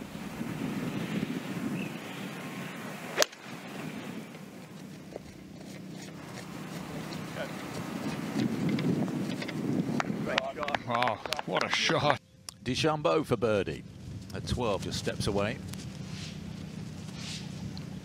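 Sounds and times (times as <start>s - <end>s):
golf club striking ball: 3.1s - 3.8s.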